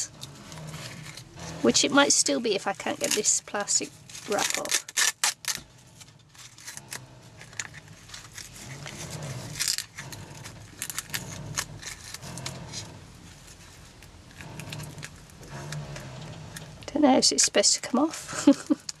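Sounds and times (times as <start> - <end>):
plastic cling wrap crinkling: 2.1 - 6.9.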